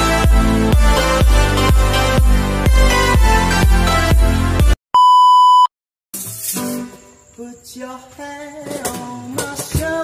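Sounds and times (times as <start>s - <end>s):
music: 0.0s - 4.8s, 6.2s - 10.0s
test pattern beep: 5.0s - 5.7s.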